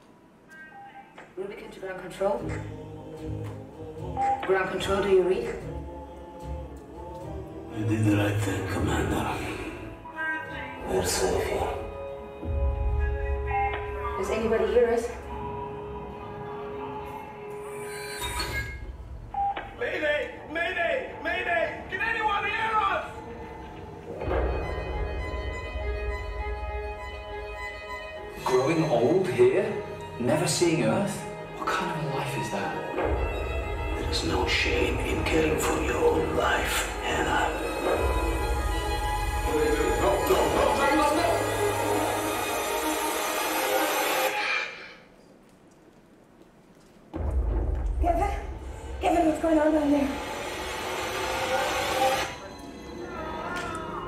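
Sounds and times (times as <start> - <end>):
trailer music over speakers: 2.2 - 44.9, 47.1 - 53.0.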